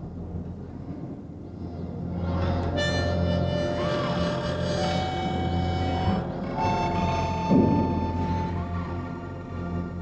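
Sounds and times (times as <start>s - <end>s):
harmonica playing slowly: 2.2s - 10.0s.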